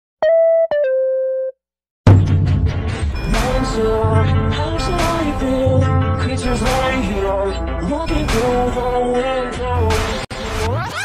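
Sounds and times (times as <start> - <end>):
descending electronic beep jingle: 0.2 - 1.6.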